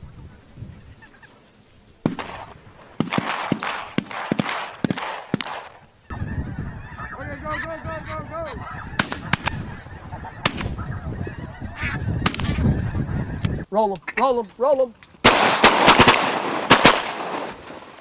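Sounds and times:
ducks wings rushing: 0:00.0 - 0:13.4
geese honking: 0:00.0 - 0:14.9
sharp cracks: 0:02.0 - 0:05.9, 0:09.0 - 0:09.7, 0:10.4 - 0:10.8, 0:12.2 - 0:12.6, 0:15.2 - 0:18.0.

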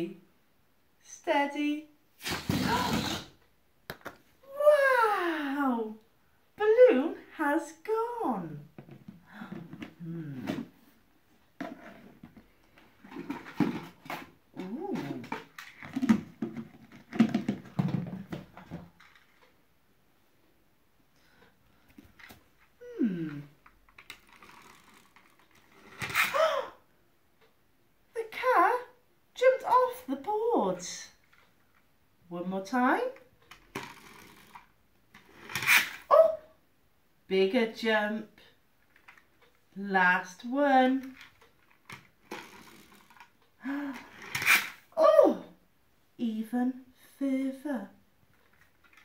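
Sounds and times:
toy car gears whirring: 0:23.9 - 0:26.4, 0:33.6 - 0:36.1, 0:41.2 - 0:43.4, 0:44.0 - 0:44.8.

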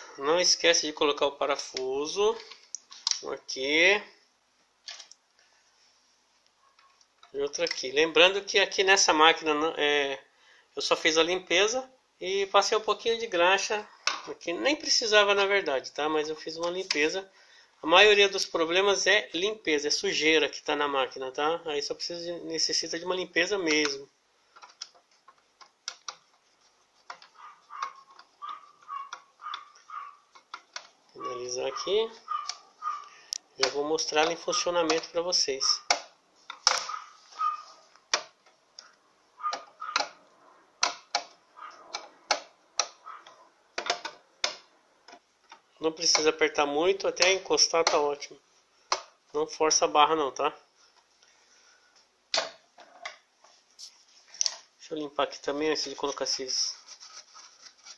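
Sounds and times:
screw squeaking: 0:27.1 - 0:33.1, 0:39.4 - 0:40.2.

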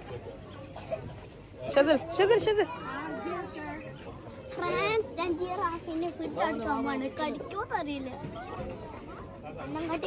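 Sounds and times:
child talking: 0:04.5 - 0:09.0.

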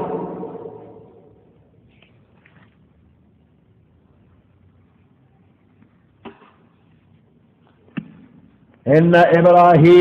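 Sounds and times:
echo of man's amplified voice: 0:08.8 - 0:10.0.

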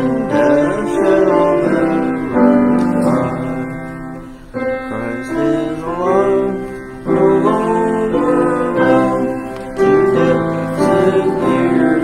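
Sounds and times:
keyboard chords: 0:00.0 - 0:12.0.

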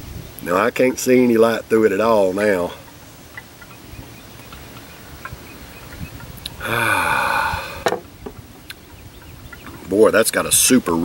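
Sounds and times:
man's breathy sigh: 0:06.6 - 0:08.0.

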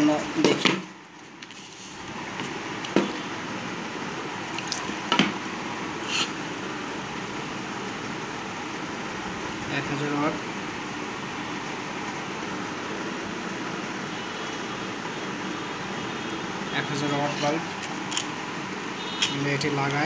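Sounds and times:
steady fan-like hiss: 0:00.0 - 0:20.0.

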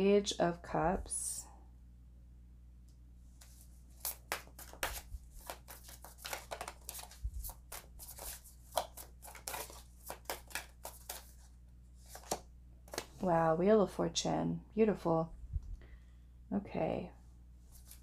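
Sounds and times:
cards being shuffled: 0:03.4 - 0:13.3, 0:17.7 - 0:18.0.

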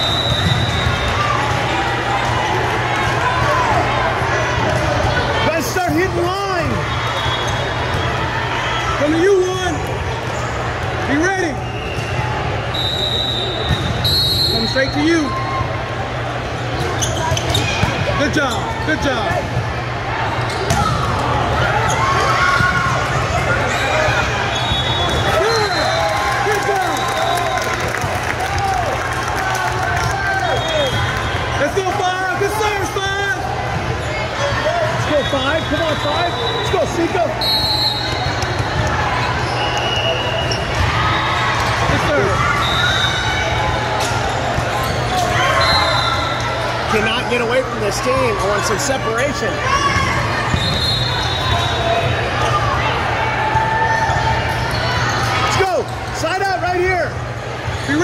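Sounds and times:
players and spectators chattering: 0:00.0 - 0:58.0.

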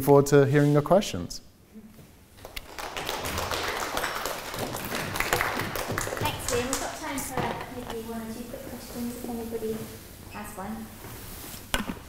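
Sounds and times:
audience applauding: 0:02.4 - 0:07.2.

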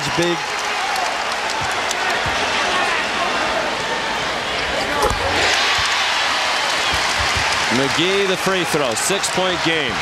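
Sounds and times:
arena crowd cheering: 0:00.0 - 0:10.0
basketball bouncing on hardwood: 0:06.9 - 0:07.6.

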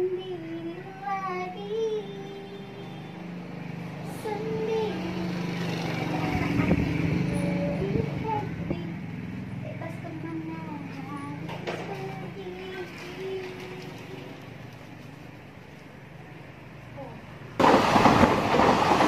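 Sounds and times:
train rumbling past: 0:17.2 - 0:19.0.

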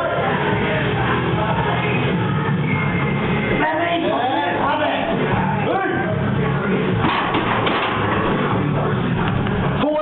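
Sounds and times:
loud rock music: 0:00.0 - 0:10.0.

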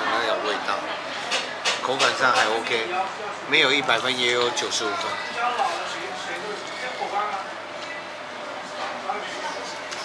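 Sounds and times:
faint indistinct voices: 0:00.0 - 0:10.0
restaurant background hubbub: 0:00.0 - 0:10.0.

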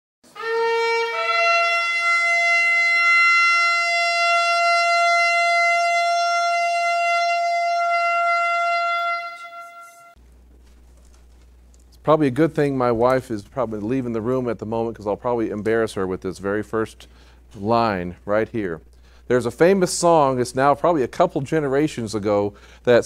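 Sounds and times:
shofar blast: 0:00.3 - 0:10.2
low steady hum: 0:02.3 - 0:23.0.

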